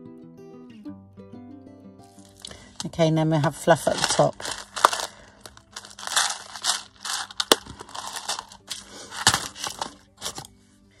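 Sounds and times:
plastic packet crinkling: 2.2s - 10.5s.

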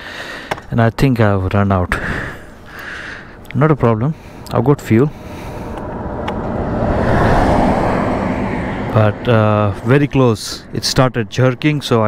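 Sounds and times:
vehicle passing on highway: 2.4s - 12.0s.

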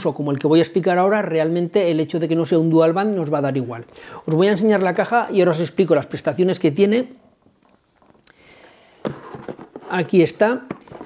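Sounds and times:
cardboard box rustling and handling: 9.1s - 11.0s.

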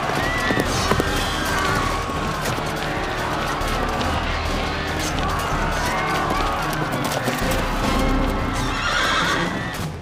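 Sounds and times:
horses galloping: 0.0s - 9.9s
dramatic background music: 0.0s - 10.0s
horse whinnying: 8.5s - 9.9s.

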